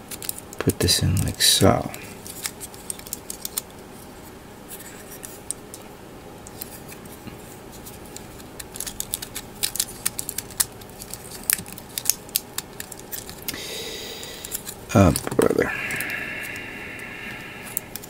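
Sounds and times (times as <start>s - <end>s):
plastic parts clicking: 14.5s - 16.1s.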